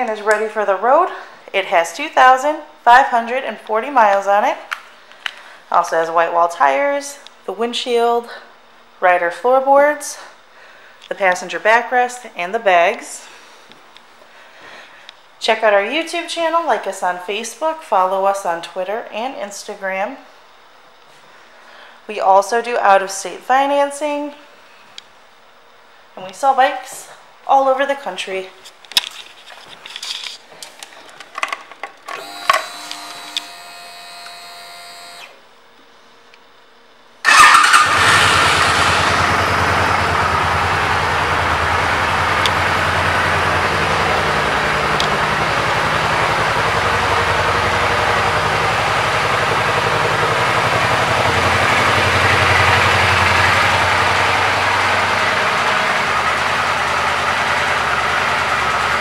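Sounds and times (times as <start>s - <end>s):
motorcycle engine starting and idling: 32.1s - 35.4s, 37.2s - 59.0s.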